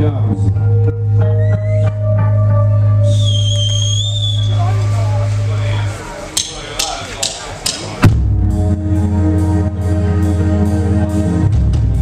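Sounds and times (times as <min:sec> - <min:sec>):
rock band playing: 0:00.0 - 0:12.0
drumsticks clicking: 0:06.4 - 0:08.0.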